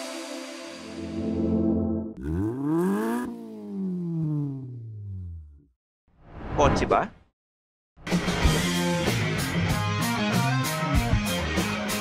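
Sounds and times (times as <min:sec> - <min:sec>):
car engine revving: 0:02.2 - 0:05.7.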